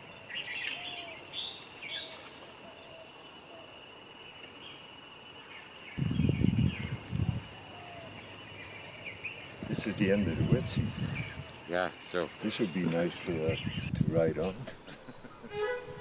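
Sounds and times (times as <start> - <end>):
insects chirring: 0.0 - 16.0.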